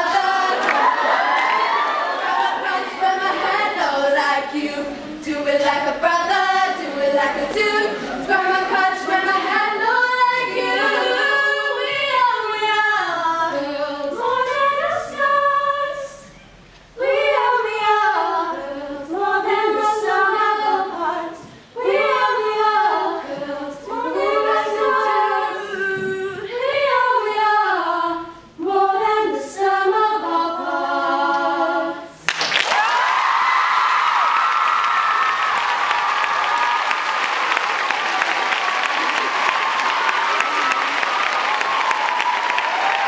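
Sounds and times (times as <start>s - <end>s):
cheering voices: 0.0s - 3.9s, 32.6s - 43.0s
girls singing a cappella: 0.0s - 32.3s
audience applause: 0.5s - 2.5s, 32.3s - 43.0s.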